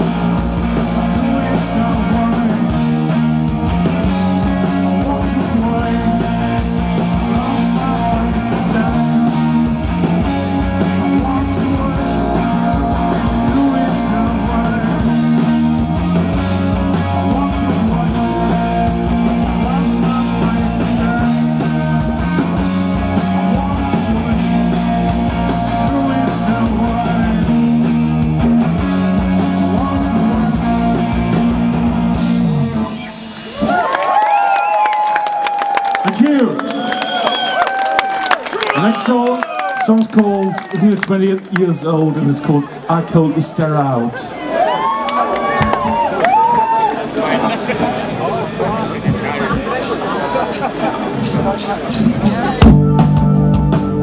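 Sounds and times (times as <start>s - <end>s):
person singing: 0.0s - 3.3s, 3.9s - 27.9s, 29.0s - 31.4s
live rock band playing: 0.0s - 37.0s, 45.4s - 54.0s.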